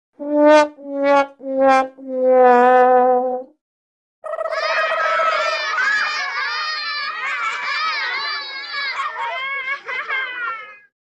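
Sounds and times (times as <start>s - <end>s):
sad trombone sound effect: 0.2s - 3.5s
crowd shouting: 4.5s - 10.0s.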